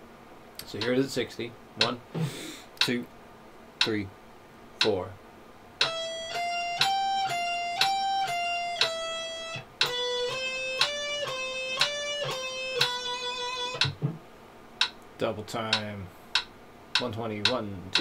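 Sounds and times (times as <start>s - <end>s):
electric guitar picking single notes: 5.8s - 14.2s.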